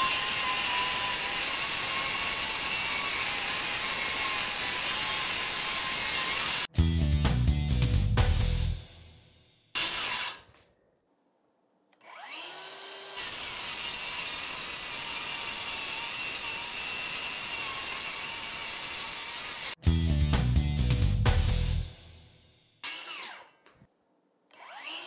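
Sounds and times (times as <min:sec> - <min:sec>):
circular saw whining and cutting: 0:00.0 - 0:06.7, 0:09.8 - 0:10.5, 0:12.0 - 0:19.8, 0:24.5 - 0:25.0.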